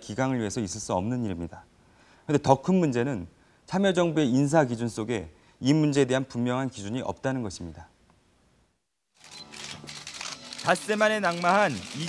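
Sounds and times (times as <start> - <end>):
camera shutters clicking: 9.2 - 12.0.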